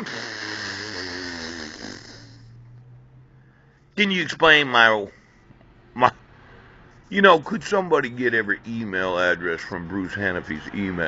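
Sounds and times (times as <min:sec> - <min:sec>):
low steady hum: 0:01.7 - 0:11.0.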